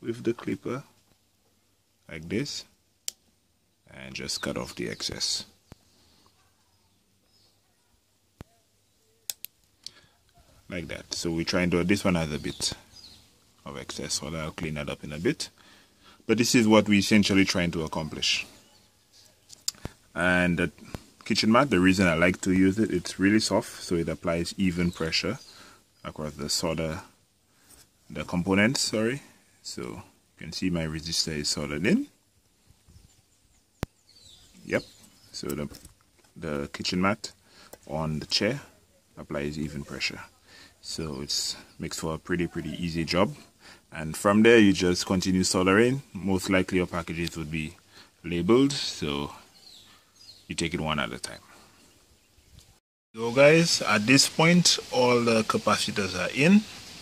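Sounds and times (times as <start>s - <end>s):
sharp click: 9.3s - 10.0s.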